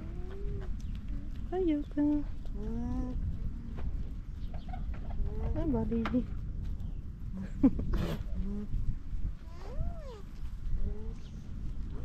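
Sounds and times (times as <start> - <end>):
low rumble: 0.0 - 12.0.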